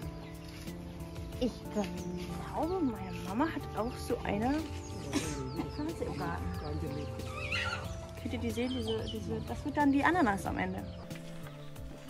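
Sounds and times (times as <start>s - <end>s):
soft music with held notes: 0.0s - 12.0s.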